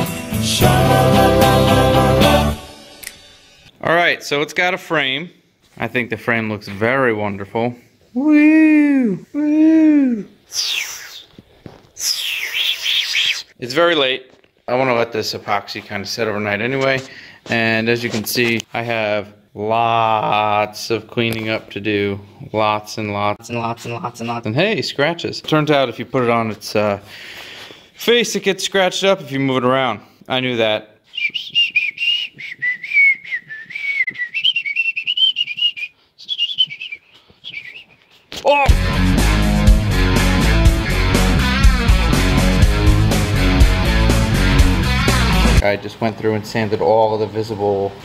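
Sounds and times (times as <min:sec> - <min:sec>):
man whooping with delight: 0:08.2 - 0:10.4, 0:38.4 - 0:38.8
person whistling a tune: 0:31.1 - 0:38.0.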